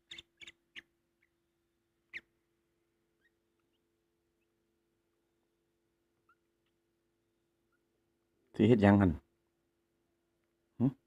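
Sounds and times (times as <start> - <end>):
bird chick peeping: 0.0 - 2.4, 3.1 - 4.6, 6.2 - 6.8
faint steady hum: 0.0 - 11.0.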